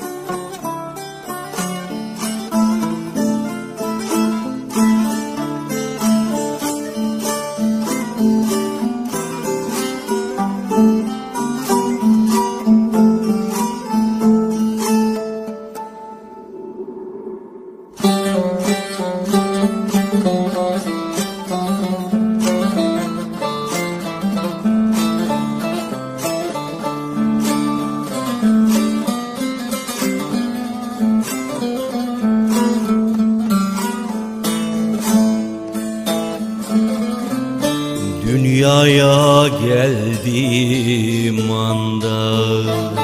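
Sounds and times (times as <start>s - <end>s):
plucked long-necked lute: 0.0s - 43.0s
low sustained drone note: 14.6s - 19.1s.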